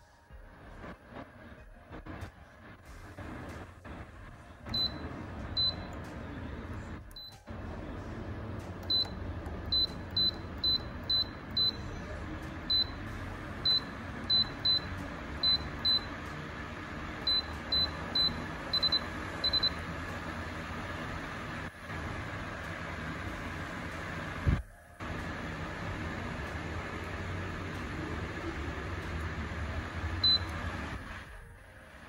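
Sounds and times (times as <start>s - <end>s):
fan rush of air: 0.0s - 32.0s.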